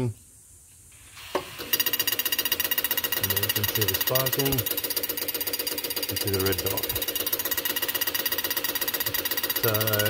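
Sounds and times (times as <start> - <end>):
starter motor whine: 1.3 - 10.0
engine cranking clatter: 1.6 - 10.0.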